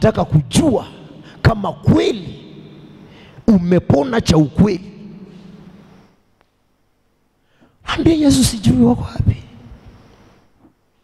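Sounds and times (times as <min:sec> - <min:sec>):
man speaking through a pa system: 0:00.0 - 0:05.3, 0:07.8 - 0:09.7.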